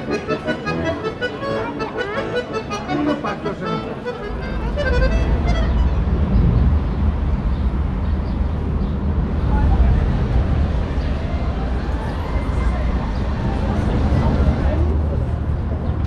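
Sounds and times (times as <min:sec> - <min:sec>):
accordion playing: 0:00.0 - 0:06.2
faint street noise: 0:00.0 - 0:16.0.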